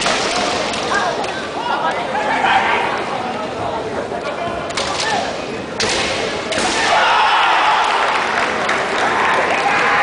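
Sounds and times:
bamboo sword strikes: 0:05.8 - 0:07.0
fencers shouting: 0:06.5 - 0:08.1.

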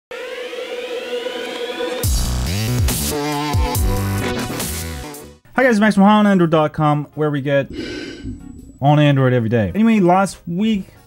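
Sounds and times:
dubstep-style music: 0:00.2 - 0:05.4
steady held tone: 0:07.6 - 0:09.6.

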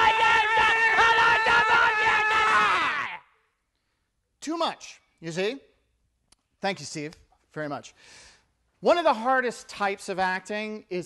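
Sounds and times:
men screaming: 0:00.0 - 0:03.2.

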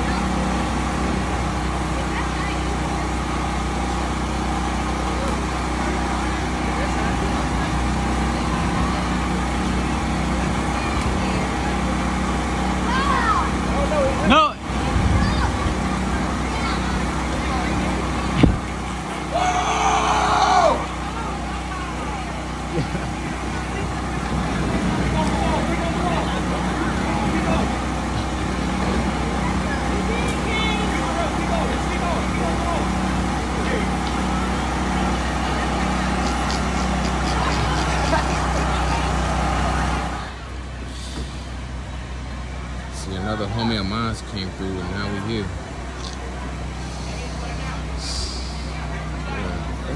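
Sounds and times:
low motor hum: 0:00.0 - 0:49.9
people's voices: 0:00.0 - 0:49.9
street sound: 0:00.0 - 0:49.9.

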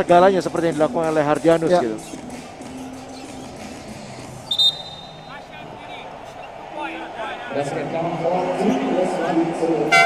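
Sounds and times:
arena crowd murmur: 0:00.0 - 0:10.0.

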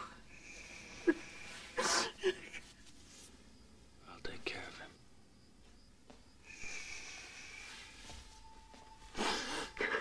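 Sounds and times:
woman crying: 0:01.0 - 0:02.6, 0:09.1 - 0:10.0.

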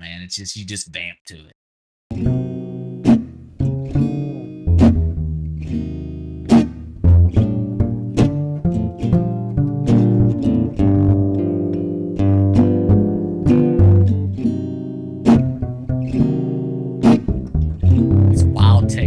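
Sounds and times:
acoustic guitar: 0:02.1 - 0:19.0
plucked upright bass: 0:02.1 - 0:19.0.

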